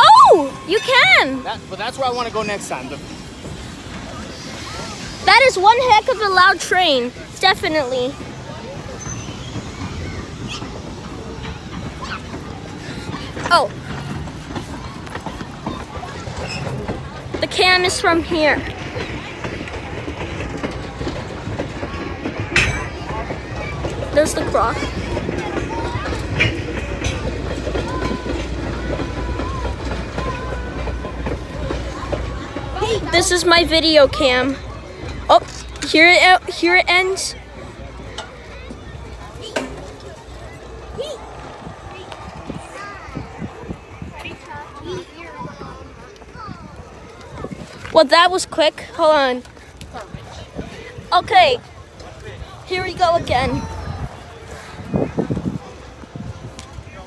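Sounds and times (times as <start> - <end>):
train wheels on rails: 0.0 - 57.0.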